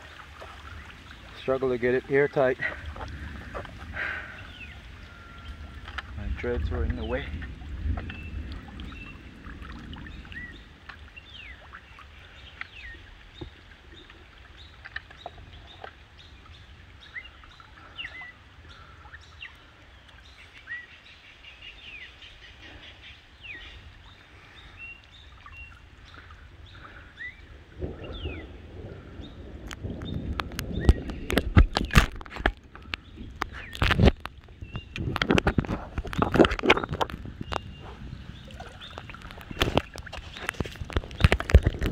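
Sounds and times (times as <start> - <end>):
small birds chirping: 0.0 - 7.2, 10.0 - 32.0, 32.8 - 41.7
low rumble of wind and water: 0.0 - 41.9
loud splashes and knocks: 29.6 - 37.7, 38.5 - 41.9.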